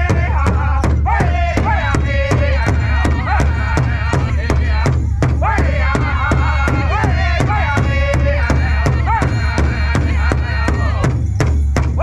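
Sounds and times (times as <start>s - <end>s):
group singing in high voices: 0.0s - 11.2s
bass drum struck in unison: 0.0s - 12.0s.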